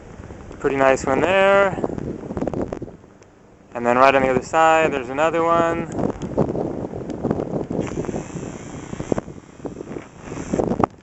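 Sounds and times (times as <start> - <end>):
wind buffeting microphone: 0.0 - 11.0
steady high hiss: 7.8 - 10.8.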